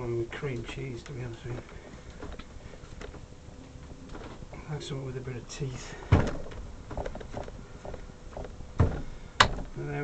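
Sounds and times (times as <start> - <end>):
clay thumping on bench: 6.1 - 9.8.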